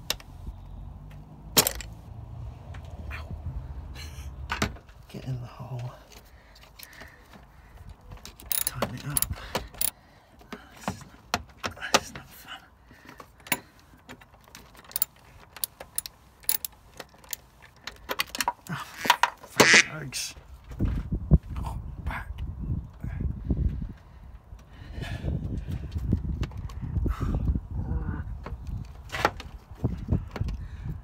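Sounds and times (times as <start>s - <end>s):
socket wrench clicking: 8.2s - 10.0s, 14.7s - 19.3s.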